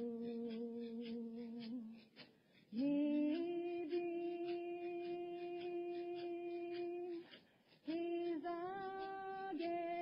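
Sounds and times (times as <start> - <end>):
woman singing unaccompanied: 0.0 - 10.0.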